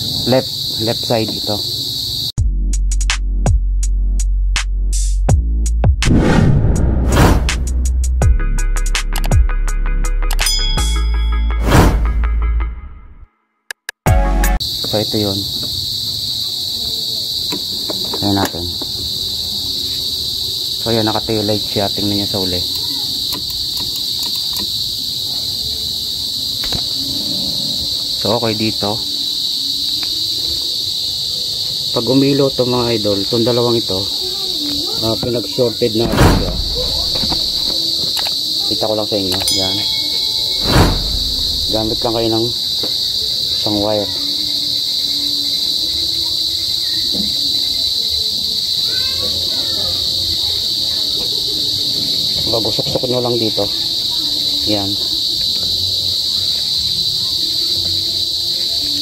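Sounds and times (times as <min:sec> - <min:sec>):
crickets chirping: 0:00.0 - 0:06.4, 0:14.6 - 0:59.0.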